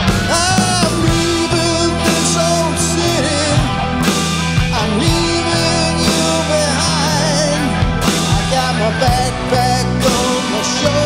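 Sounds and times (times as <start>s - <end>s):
slow blues song: 0.0s - 11.0s.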